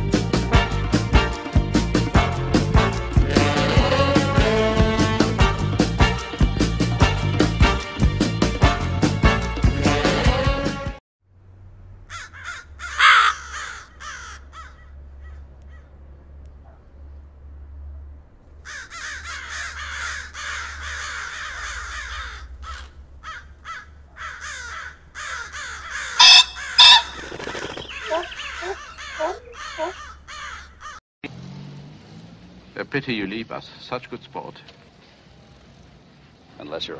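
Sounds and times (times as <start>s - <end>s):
birds calling: 12.0s - 17.2s, 18.6s - 31.0s.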